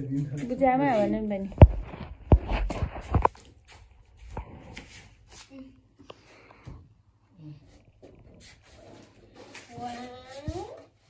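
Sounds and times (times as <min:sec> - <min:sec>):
soft rustling: 0:00.2 - 0:05.8.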